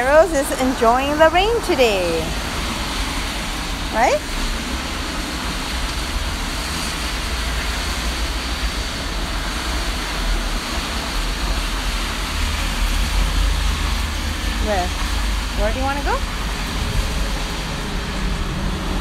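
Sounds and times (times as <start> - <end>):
steady rain falling: 0.0 - 19.0.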